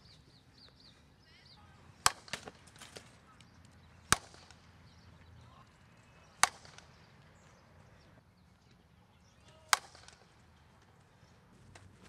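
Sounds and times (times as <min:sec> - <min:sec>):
bat hitting softball: 0:02.0 - 0:03.2, 0:04.0 - 0:04.8, 0:06.2 - 0:07.5, 0:09.6 - 0:10.5.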